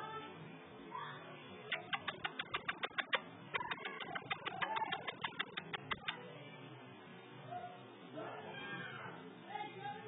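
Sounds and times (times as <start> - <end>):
rapid even clicks: 1.7 - 6.2.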